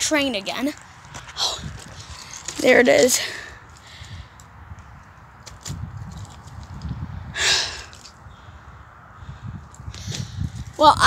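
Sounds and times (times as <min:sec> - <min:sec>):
wind rumble on microphone: 0:00.8 - 0:11.0
microphone handling noise: 0:04.7 - 0:08.2, 0:09.5 - 0:10.8
person breathing out loudly: 0:07.3 - 0:08.0.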